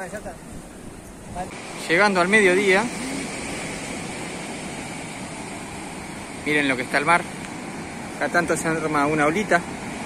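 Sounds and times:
ocean surf breaking: 0:00.0 - 0:10.0.

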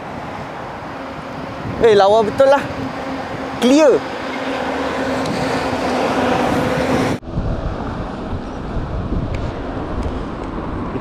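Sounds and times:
road noise: 0:00.0 - 0:11.0
vehicle engine humming: 0:00.0 - 0:11.0.

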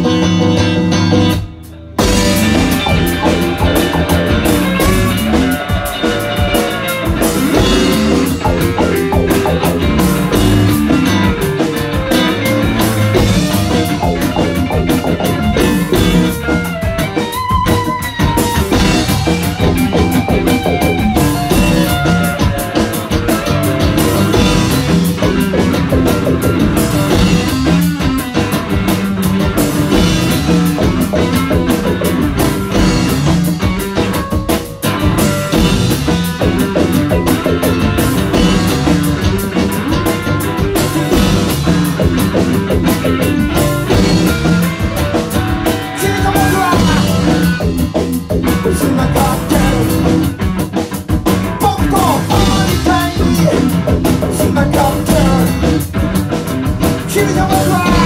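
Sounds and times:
drum kit: 0:00.0 - 0:58.0
electric guitar: 0:00.0 - 0:58.0
rock band playing: 0:00.0 - 0:58.0.

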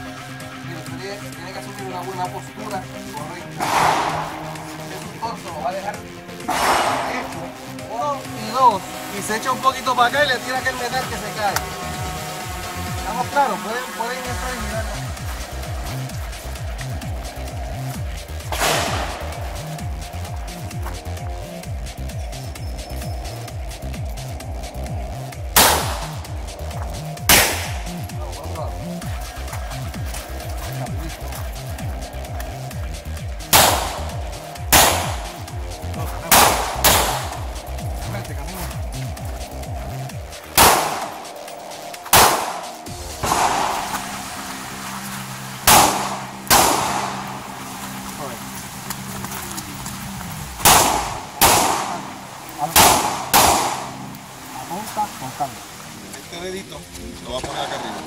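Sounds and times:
background music: 0:00.0 - 0:58.0
handgun shots: 0:03.6 - 0:04.5, 0:06.5 - 0:07.3, 0:18.5 - 0:19.2, 0:25.6 - 0:26.2, 0:27.3 - 0:28.0, 0:33.6 - 0:34.1, 0:34.7 - 0:35.4, 0:36.3 - 0:37.4, 0:40.6 - 0:41.2, 0:42.2 - 0:44.1, 0:45.7 - 0:47.4, 0:50.6 - 0:52.2, 0:52.8 - 0:54.0.

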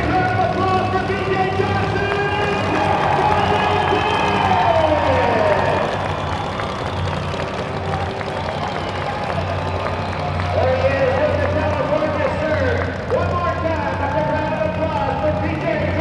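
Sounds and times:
crowd cheering: 0:00.0 - 0:16.0
monster truck engine idling: 0:00.0 - 0:16.0.

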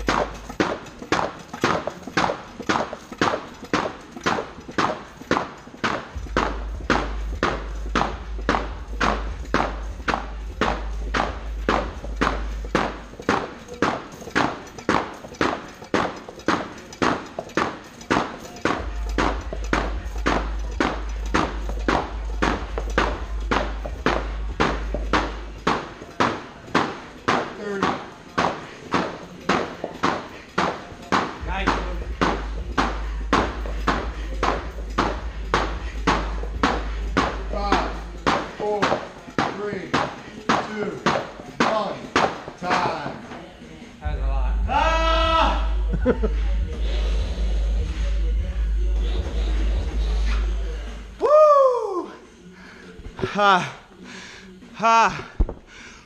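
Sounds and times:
battle ropes slamming on mats: 0:00.0 - 0:43.3.

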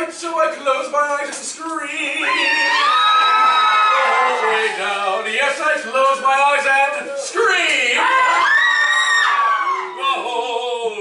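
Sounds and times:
man singing unaccompanied: 0:00.8 - 0:02.8, 0:10.0 - 0:11.0
audience cheering and applause: 0:02.2 - 0:05.3, 0:07.9 - 0:10.5.

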